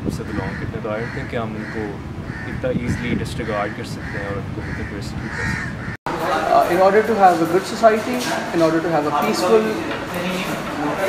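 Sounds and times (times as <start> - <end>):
man speaking: 0.0 - 5.4, 6.1 - 11.0
crows cawing: 0.2 - 6.4.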